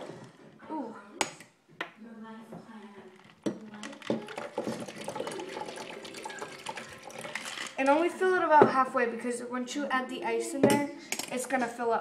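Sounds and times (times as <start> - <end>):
coffee pouring into a glass jar: 4.0 - 7.8.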